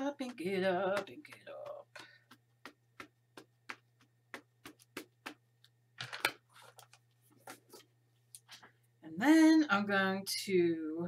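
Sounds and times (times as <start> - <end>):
rubber stamp tapping ink pad: 0.2 - 5.4.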